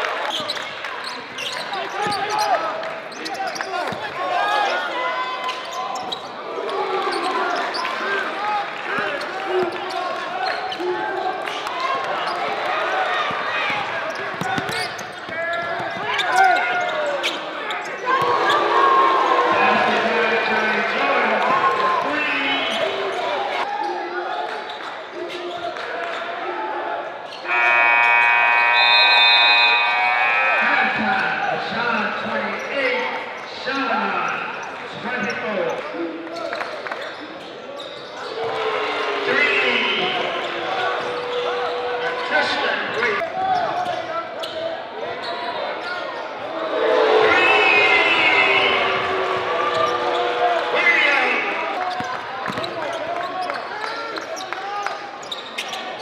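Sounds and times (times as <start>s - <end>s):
players and crowd voices: 0.0s - 56.0s
steady horn: 27.5s - 30.6s.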